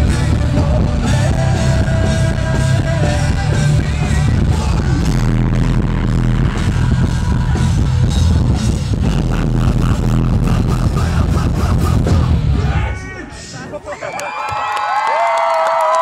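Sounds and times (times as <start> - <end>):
live rock band playing: 0.0 - 12.9.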